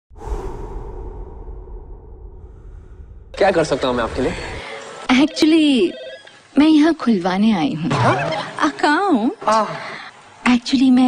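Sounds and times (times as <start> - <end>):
airy whoosh: 0.1 - 4.6
steady low rumble: 0.1 - 4.6.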